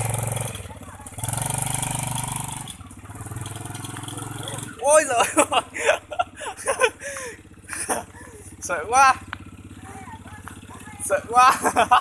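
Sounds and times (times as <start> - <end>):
small motorcycle engine puttering: 0.0 - 12.0.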